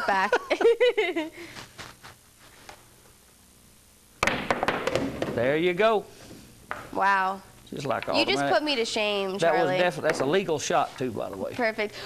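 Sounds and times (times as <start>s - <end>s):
cue striking ball: 4.2s - 5.4s
billiard balls clacking: 4.2s - 5.5s, 7.8s - 8.3s.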